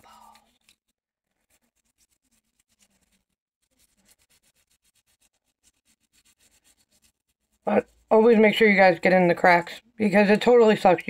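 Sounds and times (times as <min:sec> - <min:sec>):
toothbrush scrubbing denture: 0:00.3 - 0:08.6.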